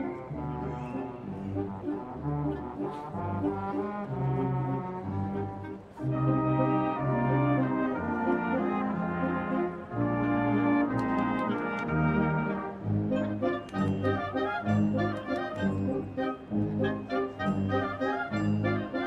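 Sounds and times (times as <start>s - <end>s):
military wind band playing: 0.0s - 19.0s.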